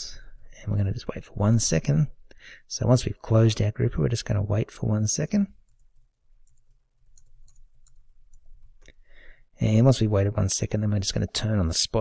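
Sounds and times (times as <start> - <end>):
keyboard keys clicking: 5.7 - 8.5.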